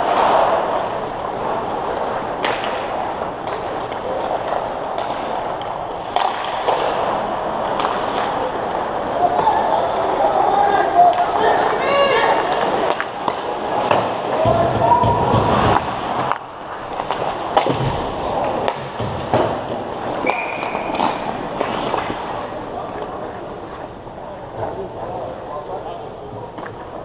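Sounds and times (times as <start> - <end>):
sticks and puck clacking: 0.1 - 23.9, 24.5 - 27.0
players shouting: 8.2 - 15.8
skate blades scraping on ice: 12.5 - 19.2.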